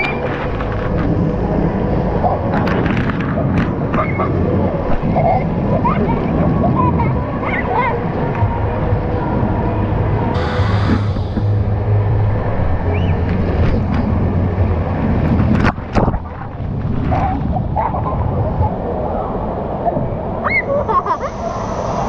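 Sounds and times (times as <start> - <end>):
echoing indoor waterpark din: 0.0 - 22.0.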